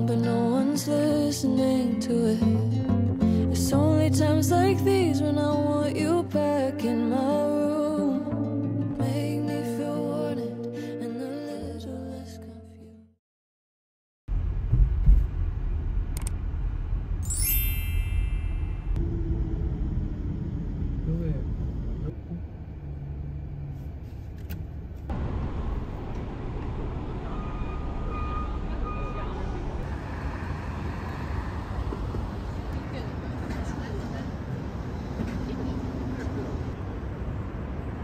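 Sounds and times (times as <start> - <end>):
passing traffic: 14.4 - 38.0
car driving on expressway: 18.9 - 38.0.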